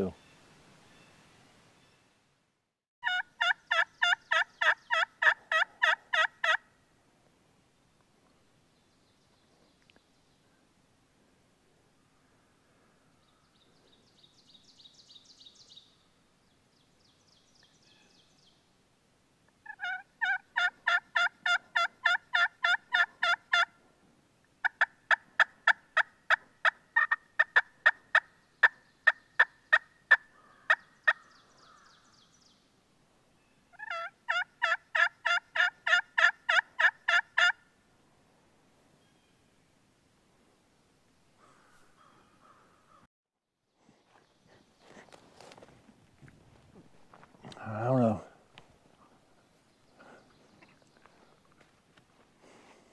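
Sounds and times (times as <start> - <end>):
turkey yelps on a mouth call: 3.0 - 6.6, 19.6 - 23.7, 24.6 - 28.2, 33.7 - 37.6.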